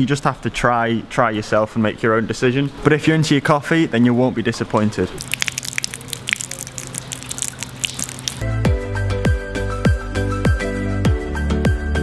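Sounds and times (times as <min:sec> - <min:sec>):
rain dripping: 0:05.2 - 0:08.4.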